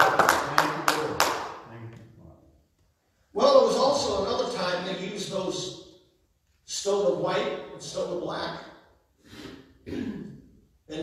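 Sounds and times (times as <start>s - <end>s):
rhythmic hand clapping: 0.0s - 1.6s.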